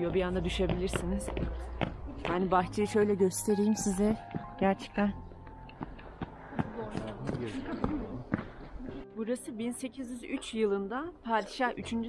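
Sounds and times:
footsteps on wet snowy stone: 0:00.1 - 0:02.6, 0:05.7 - 0:09.0.

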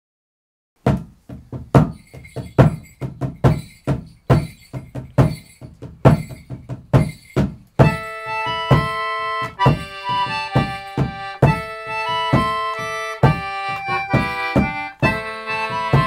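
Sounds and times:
drum struck with wooden beater: 0:00.8 - 0:08.0, 0:09.6 - 0:11.7, 0:12.3 - 0:13.5.

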